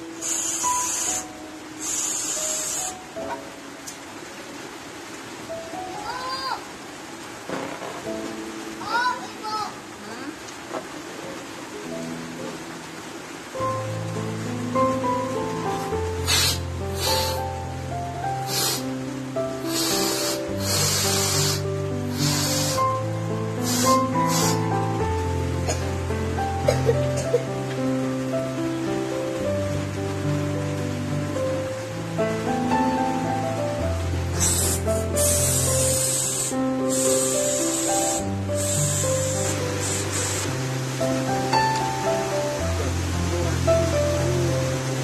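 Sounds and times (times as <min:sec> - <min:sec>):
gas hissing through nozzle: 0:00.0 - 0:03.3, 0:16.2 - 0:17.6, 0:18.3 - 0:19.0, 0:19.6 - 0:25.0, 0:34.3 - 0:40.6
melodic background music: 0:00.0 - 0:04.5, 0:13.5 - 0:45.0.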